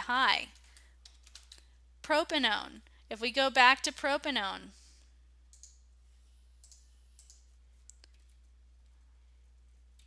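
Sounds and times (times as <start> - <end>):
low electrical hum: 0.0 - 10.0
computer mouse clicks: 5.5 - 5.8, 6.6 - 8.2.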